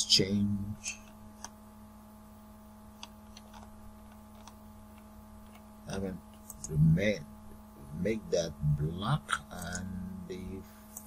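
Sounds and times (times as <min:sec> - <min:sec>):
low electrical hum: 0:00.0 - 0:11.0
computer mouse clicks: 0:03.0 - 0:05.7.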